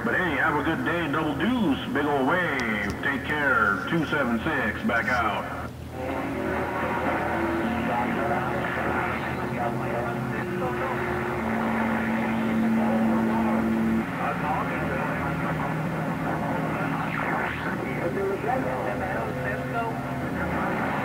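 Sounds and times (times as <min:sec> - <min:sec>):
faint garbled radio voices: 0:00.0 - 0:21.0
radio static: 0:00.0 - 0:21.0
low tone: 0:06.0 - 0:21.0.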